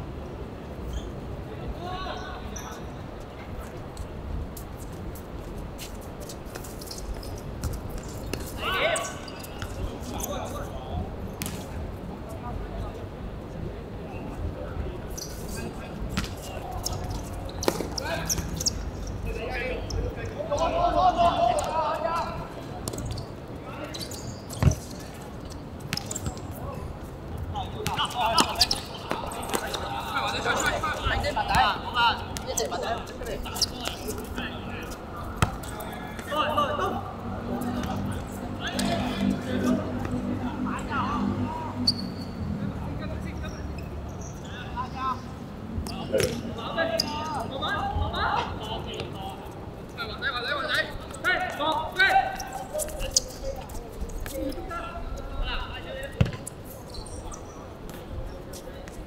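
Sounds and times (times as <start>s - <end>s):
football kicked and bouncing: 11.4s - 11.7s, 56.2s - 56.5s
players shouting: 20.3s - 22.6s.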